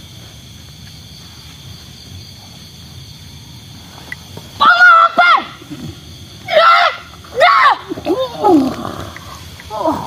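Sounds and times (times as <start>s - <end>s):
woman shrieking and wailing: 4.6s - 5.7s, 6.5s - 8.7s.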